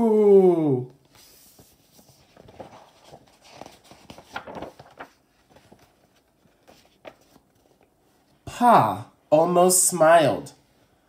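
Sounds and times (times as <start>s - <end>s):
book pages rustling: 1.0s - 8.4s.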